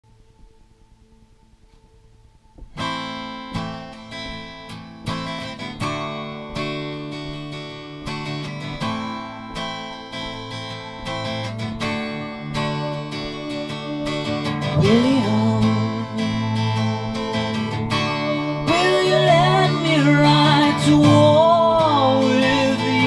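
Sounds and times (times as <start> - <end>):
acoustic guitar strumming chords: 2.6 - 23.0.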